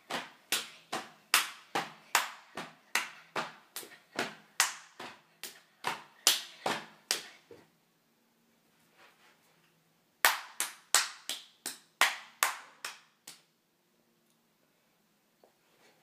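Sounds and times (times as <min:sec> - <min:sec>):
hand claps and slaps: 0:00.0 - 0:07.4, 0:10.2 - 0:13.5.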